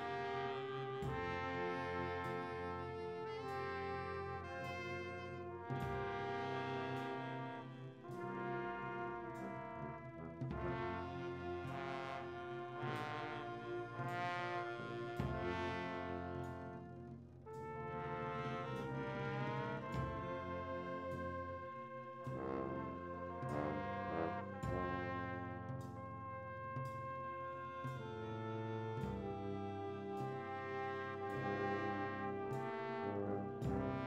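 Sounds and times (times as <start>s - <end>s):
brass band playing: 0.0s - 34.0s.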